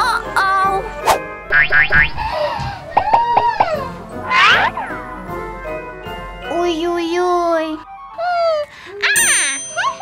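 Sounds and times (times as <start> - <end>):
children's background music: 0.0 - 10.0
springy boing: 1.5 - 2.2
rising wobbling chirps: 1.5 - 2.3, 3.0 - 4.8.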